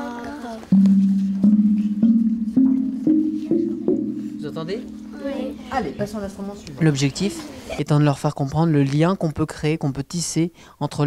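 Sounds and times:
mallet striking ringing metal blades: 0.8s - 6.0s.

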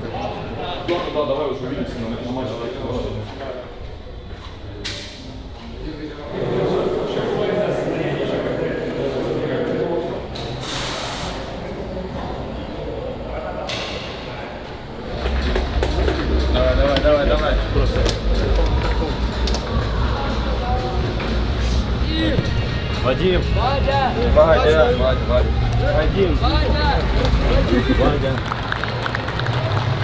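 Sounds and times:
indistinct voices: 0.0s - 30.0s
background music: 15.0s - 30.0s.

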